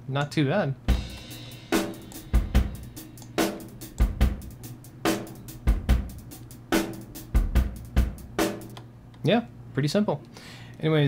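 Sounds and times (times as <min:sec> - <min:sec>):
rock drum loop with reverb: 0:00.9 - 0:08.8.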